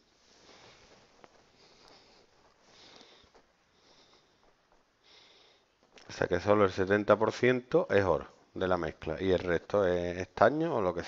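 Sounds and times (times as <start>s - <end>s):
faint breaths: 0.0s - 6.2s.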